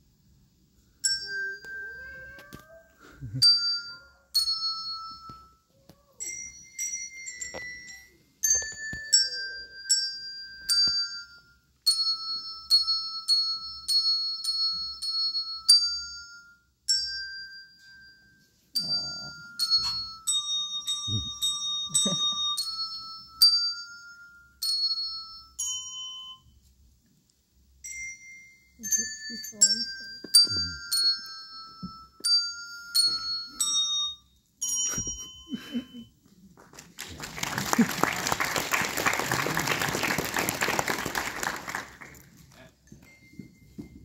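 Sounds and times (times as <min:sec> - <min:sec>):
handbells ringing a tune: 0:01.0 - 0:26.7, 0:27.8 - 0:36.2, 0:42.3 - 0:44.0.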